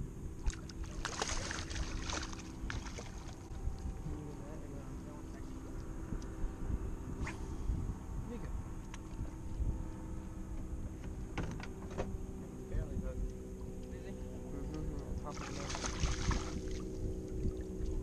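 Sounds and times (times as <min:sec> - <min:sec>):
wind rumbling on microphone: 0:00.0 - 0:18.0
fish splashing at water surface: 0:00.4 - 0:03.4, 0:15.3 - 0:16.8.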